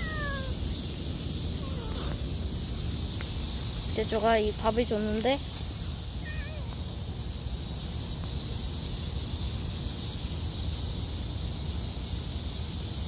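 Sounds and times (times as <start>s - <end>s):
insects droning: 0.0s - 13.0s.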